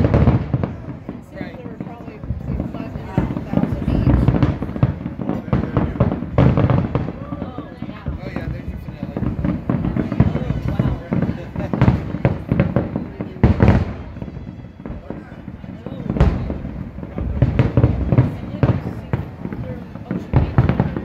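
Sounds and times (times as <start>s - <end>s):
fireworks bursting: 0.0s - 21.0s.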